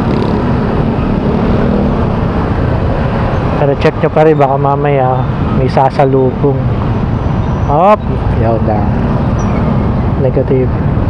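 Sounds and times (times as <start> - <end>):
traffic engines: 0.0 - 11.0.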